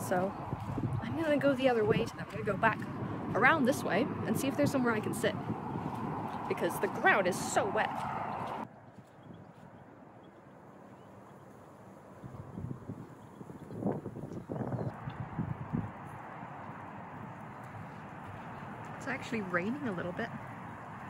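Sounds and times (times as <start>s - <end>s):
footsteps on wet grass: 0.0s - 13.2s, 14.4s - 21.0s.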